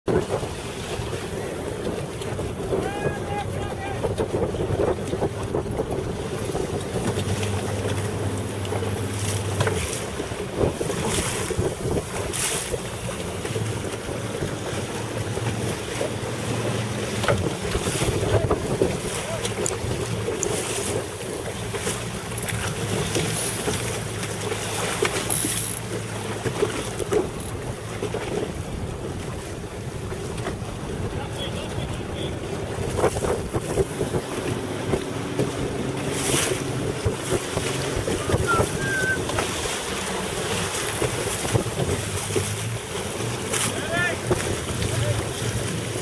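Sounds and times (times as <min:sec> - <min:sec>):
waves splashing: 0:00.0 - 0:46.0
wind gusting across microphone: 0:00.1 - 0:22.2, 0:27.0 - 0:43.4.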